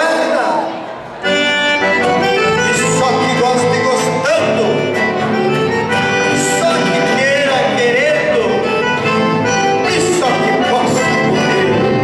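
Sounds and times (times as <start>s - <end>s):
accordion folk music: 0.0s - 12.0s
guitar: 0.0s - 12.0s.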